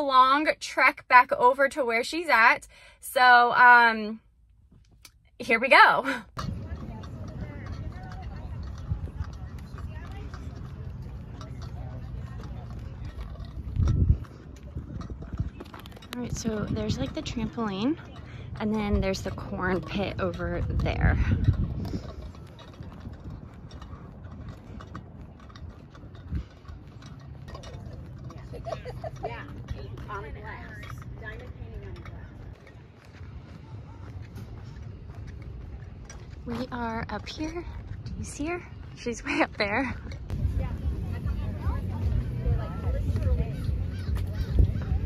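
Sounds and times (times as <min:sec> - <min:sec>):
wind buffeting microphone: 0:06.3 - 0:45.0
footsteps on gravel: 0:06.5 - 0:45.0
faint distant calls: 0:41.0 - 0:45.0.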